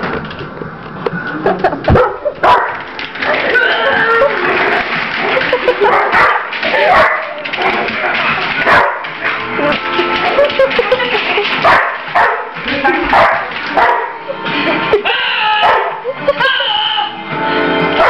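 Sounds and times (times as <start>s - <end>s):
television music and voices: 1.1s - 18.0s
dog barking: 1.9s - 2.8s, 5.8s - 7.9s, 8.7s - 9.0s, 11.6s - 12.5s, 13.1s - 14.2s, 15.6s - 16.0s.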